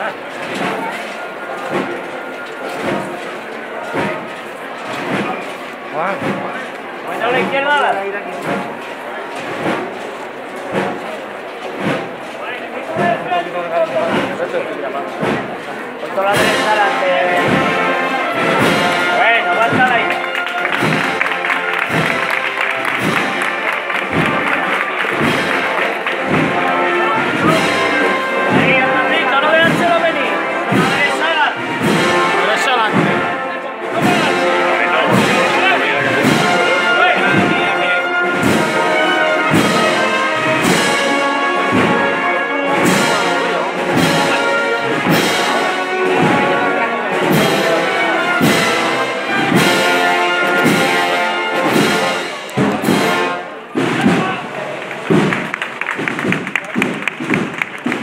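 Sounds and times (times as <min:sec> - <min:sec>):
brass band processional march: 0:00.0 - 0:58.0.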